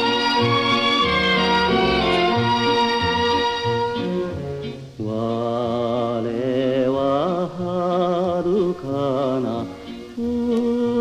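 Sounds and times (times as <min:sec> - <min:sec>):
orchestral accompaniment: 0:00.0 - 0:05.7.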